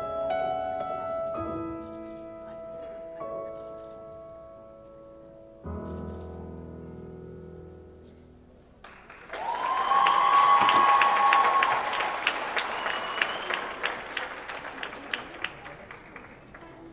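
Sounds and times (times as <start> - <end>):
piano music: 0.0 - 9.3
audience applause: 8.8 - 16.9
long held cheer: 9.3 - 15.3.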